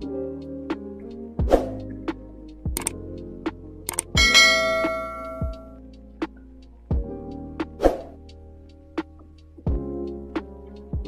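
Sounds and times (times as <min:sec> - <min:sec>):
background music with steady beat: 0:00.0 - 0:11.0
bell chime: 0:04.2 - 0:05.8.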